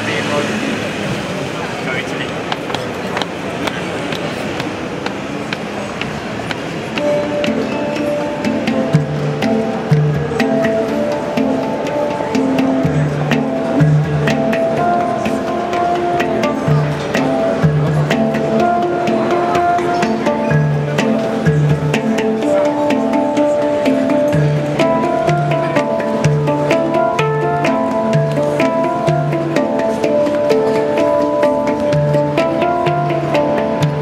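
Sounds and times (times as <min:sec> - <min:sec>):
hang drums ringing melodic notes: 0:06.8 - 0:34.0
deep bass handpan notes: 0:07.0 - 0:34.0.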